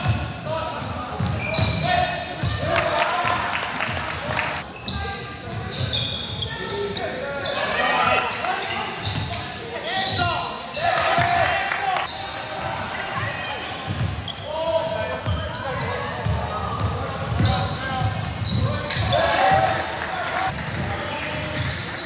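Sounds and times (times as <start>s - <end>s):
basketball bouncing on court: 13.9s - 14.2s, 15.2s - 19.8s.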